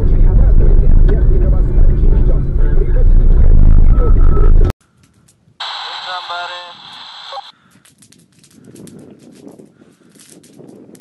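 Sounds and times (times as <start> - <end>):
faint crackle: 4.9 - 10.6
radio hiss: 5.6 - 7.5
speech over two-way radio: 5.6 - 7.5
wind noise: 7.7 - 11.0.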